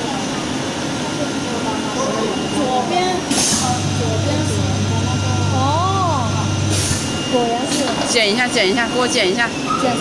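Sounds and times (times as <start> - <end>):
conveyor machine hum: 0.0 - 10.0.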